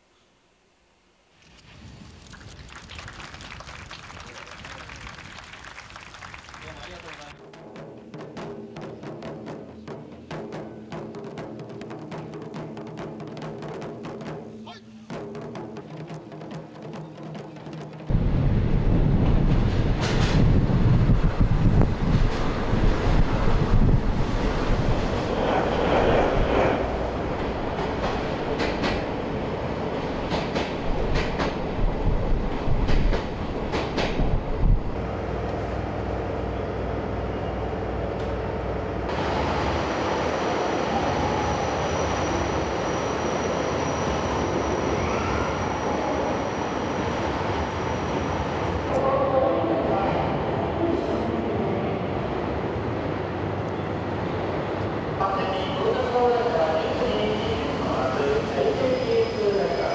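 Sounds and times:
train running noise inside car: 18.9 - 37.0, 55.2 - 59.9
diesel locomotive rumble: 29.9 - 42.8.

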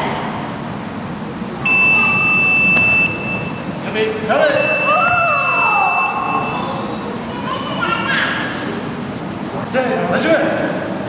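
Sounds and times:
sports hall background noise: 0.0 - 11.0
high-pitched signal tone: 1.7 - 3.7, 4.6 - 6.8.

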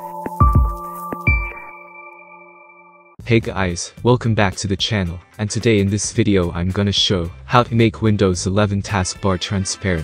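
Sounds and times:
chime-like chord: 0.0 - 3.2
electronic jingle: 0.0 - 3.2.

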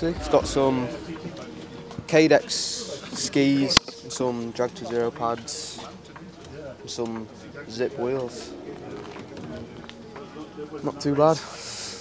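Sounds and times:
faint voices: 0.0 - 12.0
outdoor ambience: 0.0 - 12.0.

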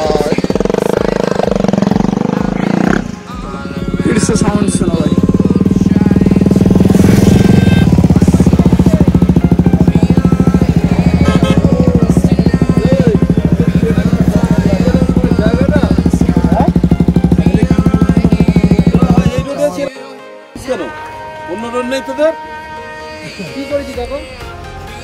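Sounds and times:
motorcycle engine running: 0.0 - 19.8.

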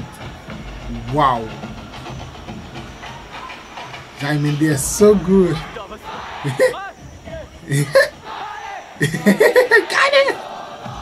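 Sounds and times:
concert crowd din: 0.0 - 11.0.

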